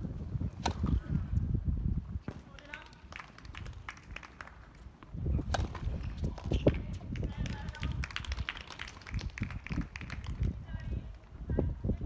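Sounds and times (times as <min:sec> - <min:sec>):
tennis ball strikes and bounces: 0:00.5 - 0:01.2, 0:05.4 - 0:07.0.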